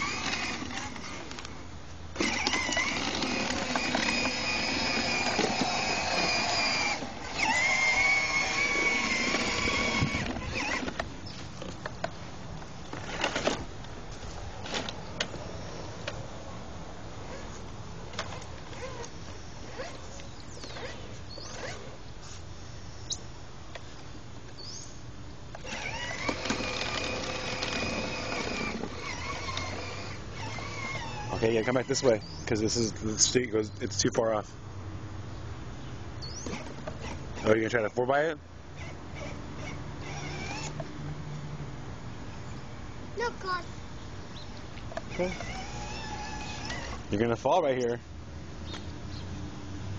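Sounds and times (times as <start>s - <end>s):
toy electric motor running: 0.0s - 1.4s, 2.2s - 11.0s, 25.6s - 32.8s, 36.4s - 37.9s, 38.8s - 40.8s, 45.1s - 47.0s
plastic wheels rattling on concrete: 2.2s - 11.9s, 25.6s - 32.0s.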